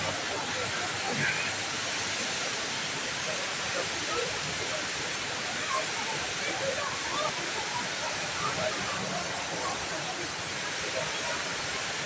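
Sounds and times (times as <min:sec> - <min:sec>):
indoor waterfall rushing: 0:00.0 - 0:12.0.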